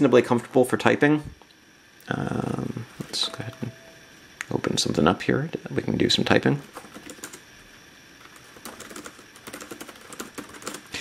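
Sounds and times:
keyboard typing clicks: 6.6s - 7.4s, 8.2s - 10.9s.

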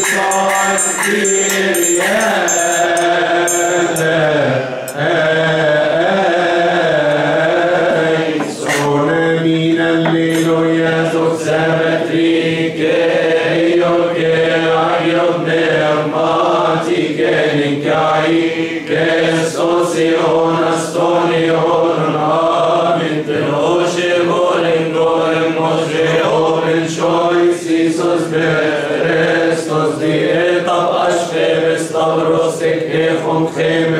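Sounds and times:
hand triangle strikes: 0.0s - 5.1s
men chanting a hymn: 0.0s - 33.9s.

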